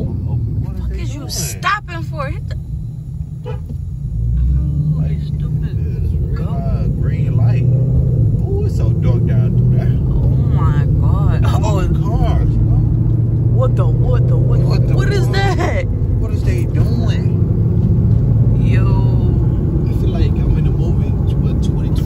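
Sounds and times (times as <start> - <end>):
car engine and road rumble: 0.0 - 22.0
indistinct voices talking: 0.0 - 22.0.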